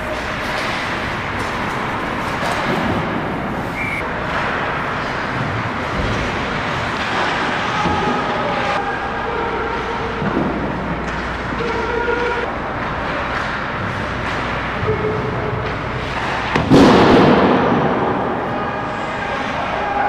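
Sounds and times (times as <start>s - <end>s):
skates on ice: 0.0s - 20.0s.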